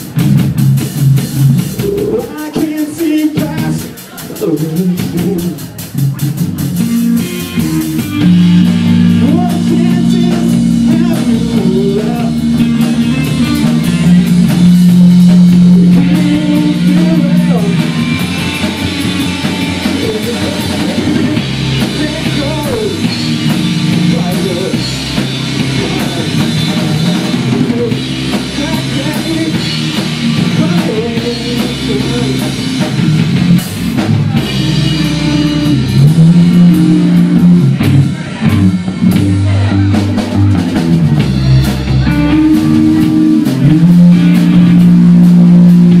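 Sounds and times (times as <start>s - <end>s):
rock band playing: 0.0s - 46.0s.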